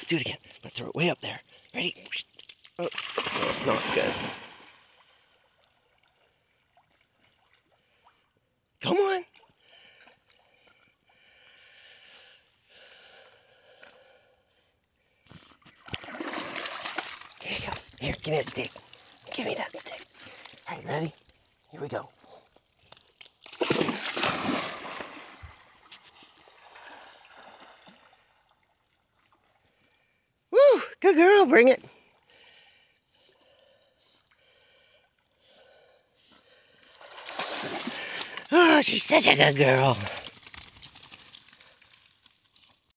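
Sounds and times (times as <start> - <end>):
dog splashing into water: 2.8 - 4.7, 15.9 - 21.2, 22.9 - 25.8, 37.0 - 38.8
dog swimming in water: 15.4 - 29.9.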